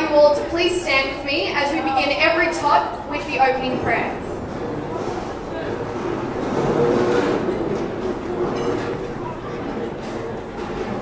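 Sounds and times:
people shuffling: 0:03.2 - 0:11.0
chairs scraping: 0:03.4 - 0:11.0.

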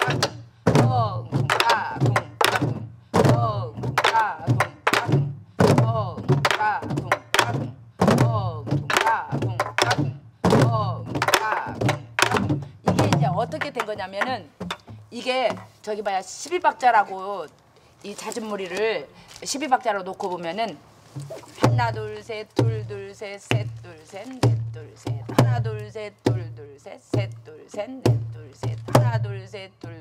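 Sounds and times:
barrel drums struck together: 0:00.0 - 0:15.7
voices chanting drum syllables: 0:00.0 - 0:15.8, 0:21.2 - 0:30.0.

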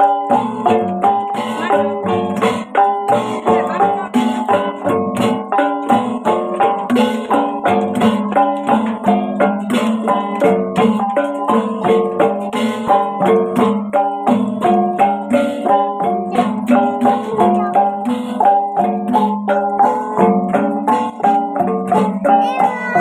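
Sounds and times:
small gongs playing a melody: 0:00.0 - 0:23.0.

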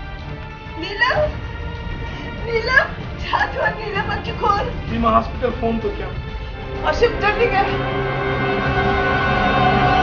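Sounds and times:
background music: 0:00.0 - 0:10.0.

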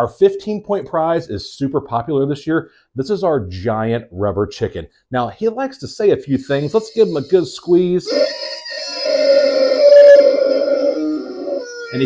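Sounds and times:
rubber chicken toy squawk: 0:06.6 - 0:12.0.

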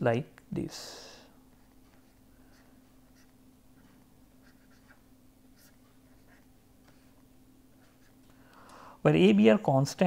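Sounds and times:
steady low hum: 0:00.0 - 0:10.0
stylus scratching on tablet: 0:01.6 - 0:08.2.

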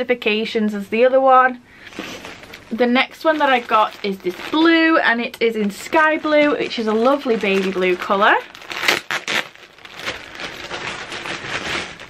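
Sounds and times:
plastic packaging crinkling: 0:01.8 - 0:12.0.

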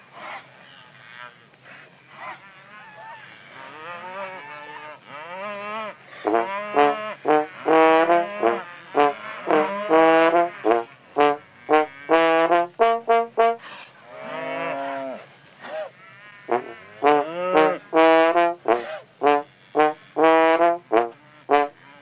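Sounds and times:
trombone playing lively tune: 0:06.2 - 0:13.6, 0:16.5 - 0:22.0.

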